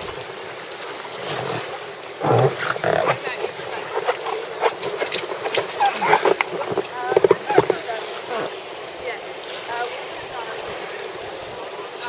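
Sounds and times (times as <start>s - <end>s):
water splashing: 0.0s - 12.0s.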